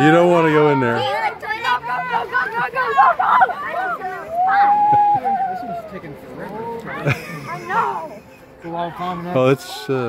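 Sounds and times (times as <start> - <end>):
scattered voices: 0.0 - 10.0.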